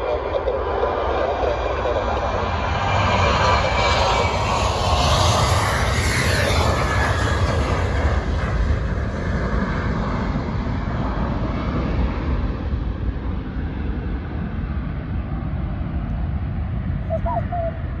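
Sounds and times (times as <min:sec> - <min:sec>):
jet engines at take-off: 0:00.0 - 0:18.0.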